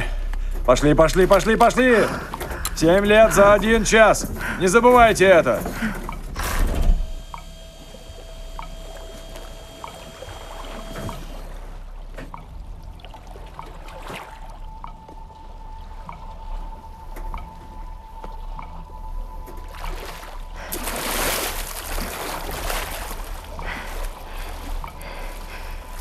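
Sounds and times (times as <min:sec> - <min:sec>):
regular ticking: 0:00.0 - 0:11.4, 0:12.3 - 0:13.8, 0:14.7 - 0:19.5, 0:23.1 - 0:26.0
water sloshing and lapping: 0:00.0 - 0:26.0.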